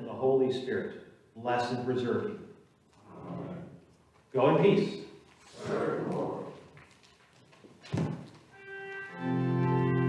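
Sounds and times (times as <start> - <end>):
church organ chord: 8.6 - 10.0.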